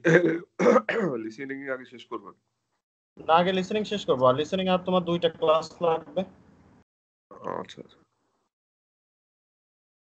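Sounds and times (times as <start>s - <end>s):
person clearing throat: 0.0s - 1.3s.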